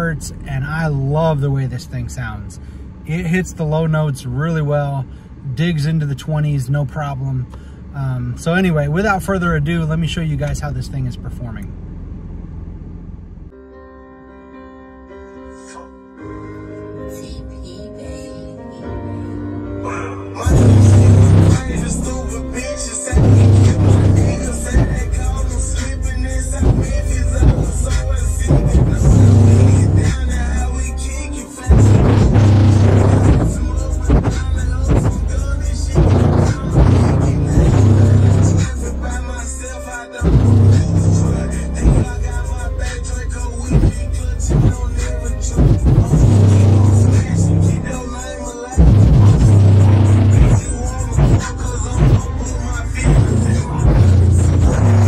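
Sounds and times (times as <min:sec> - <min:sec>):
bass-heavy music through subwoofers: 0:00.0 - 0:02.3, 0:08.4 - 0:11.6, 0:19.6 - 0:55.0.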